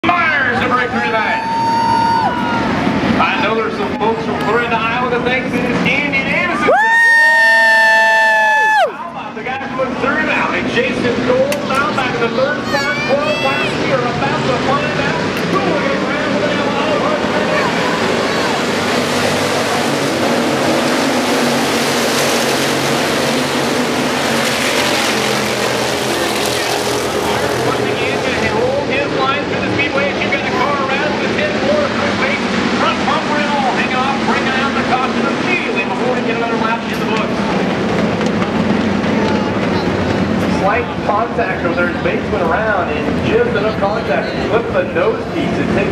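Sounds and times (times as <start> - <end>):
race car engines: 0.0 - 45.9.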